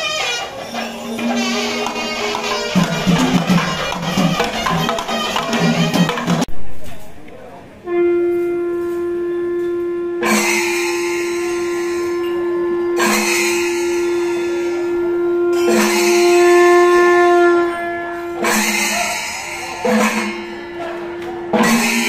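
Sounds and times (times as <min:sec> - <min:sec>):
wind instrument steady note: 0:00.0 - 0:06.8, 0:07.8 - 0:22.0.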